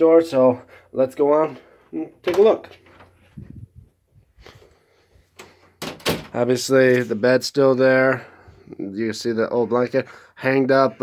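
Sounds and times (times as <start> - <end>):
door handling sounds: 5.4 - 6.4.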